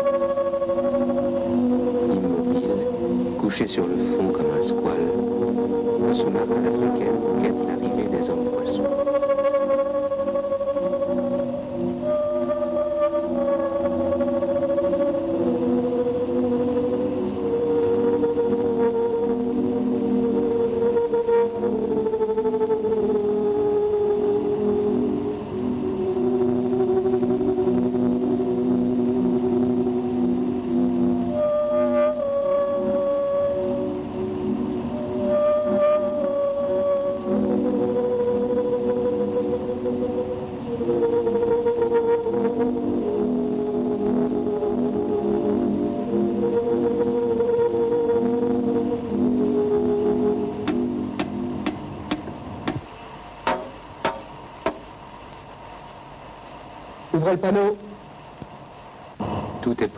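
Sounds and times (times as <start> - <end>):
slow brass-like film music: 0.0 - 52.6.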